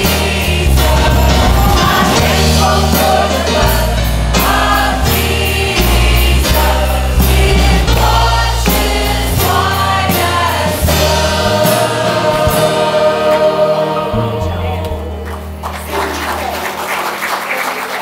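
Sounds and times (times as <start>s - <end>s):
choir singing a hymn: 0.0s - 15.4s
instrumental accompaniment: 0.0s - 16.4s.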